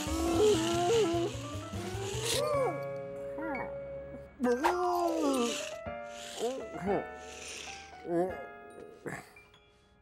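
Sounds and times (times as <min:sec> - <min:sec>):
cartoon background music: 0:00.0 - 0:10.0.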